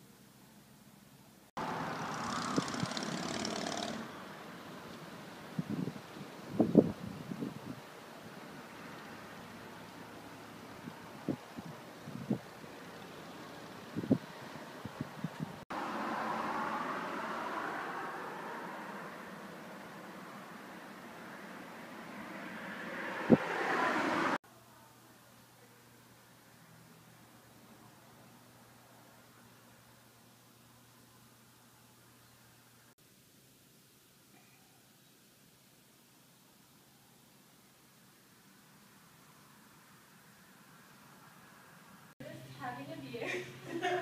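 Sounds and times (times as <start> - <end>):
steady outdoor rush: 1.6 - 24.4.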